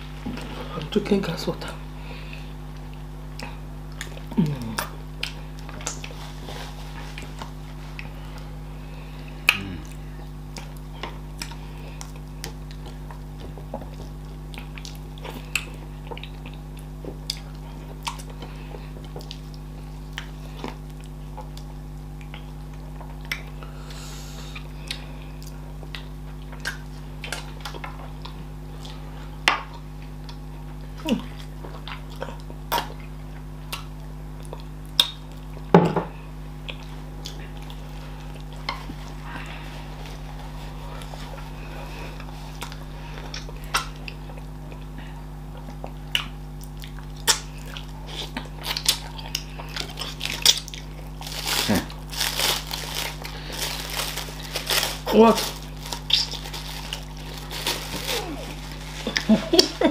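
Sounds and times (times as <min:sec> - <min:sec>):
steady low hum: 0:00.0 - 0:59.9
wet chewing smacks: 0:02.7 - 0:06.2, 0:09.4 - 0:23.6, 0:24.5 - 0:35.7, 0:36.6 - 0:51.2.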